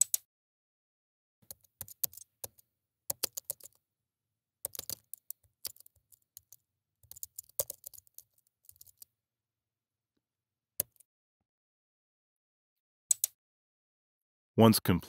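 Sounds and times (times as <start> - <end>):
typing on computer keyboard: 1.4 - 3.8, 4.6 - 9.1, 13.1 - 13.3.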